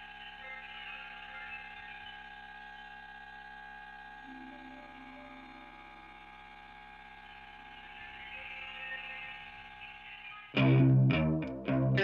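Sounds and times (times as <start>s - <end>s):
ambient music drone: 0.0s - 12.0s.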